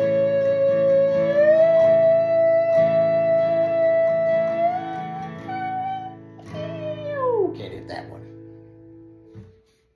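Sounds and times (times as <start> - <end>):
acoustic guitar chord ringing: 0.0 - 9.8.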